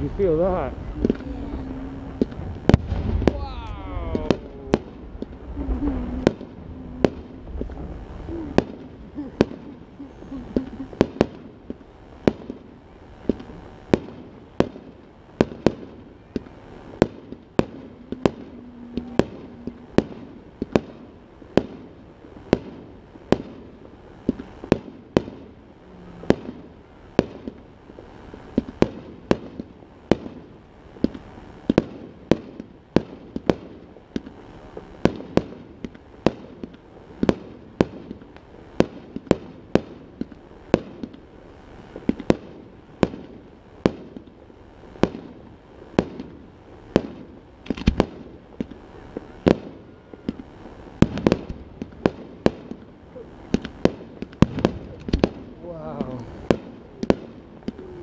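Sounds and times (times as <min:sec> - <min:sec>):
fireworks bangs: 0:00.0 - 0:58.0.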